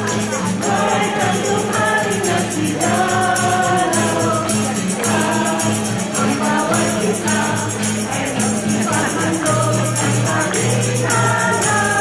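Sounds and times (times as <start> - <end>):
acoustic guitar: 0.0 - 12.0
group of people singing: 0.0 - 12.0.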